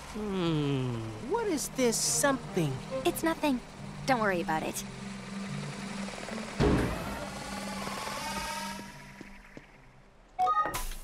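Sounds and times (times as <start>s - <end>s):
drone rotor whir: 0.0s - 10.2s
background music: 1.0s - 9.4s.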